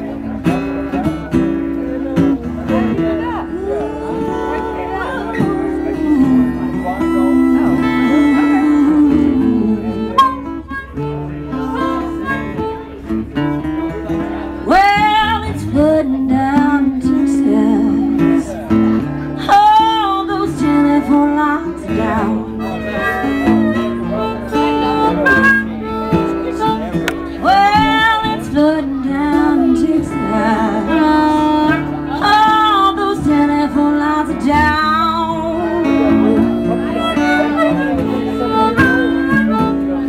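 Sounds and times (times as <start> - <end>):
acoustic guitar playing: 0.0 - 40.0
bending lead guitar line: 0.0 - 40.0.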